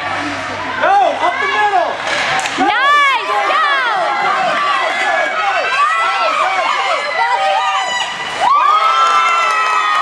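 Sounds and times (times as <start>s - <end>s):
spectators cheering and shouting: 0.0s - 10.0s.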